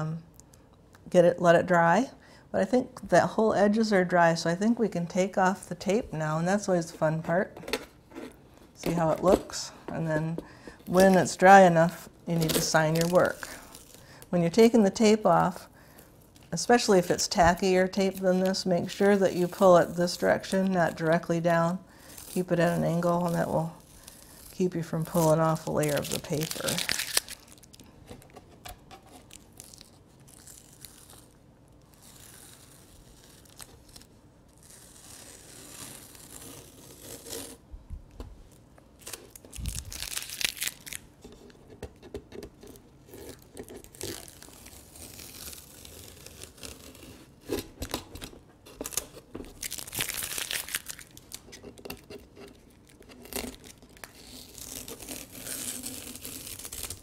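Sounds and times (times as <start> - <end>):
masking tape peeling off paper: 22.0 - 27.9, 29.1 - 37.6, 39.0 - 41.1, 42.7 - 57.0.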